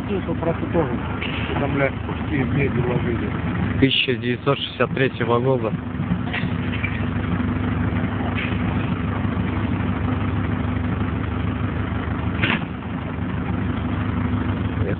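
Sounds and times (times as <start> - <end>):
vehicle engine running: 0.0 - 14.9.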